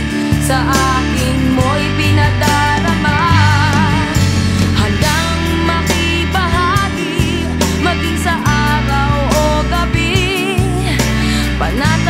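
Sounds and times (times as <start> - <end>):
pop band with steady bass: 0.0 - 12.0
woman singing with vibrato: 0.3 - 12.0.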